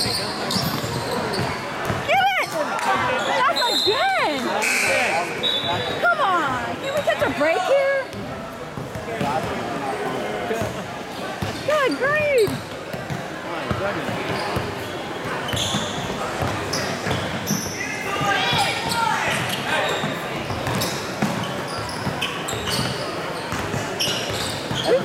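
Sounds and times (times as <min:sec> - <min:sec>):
sneakers squeaking on court: 0:00.0 - 0:09.7, 0:10.6 - 0:25.0
chatter in echoing hall: 0:00.0 - 0:25.0
basketball bouncing: 0:15.5 - 0:17.4, 0:20.5 - 0:21.4.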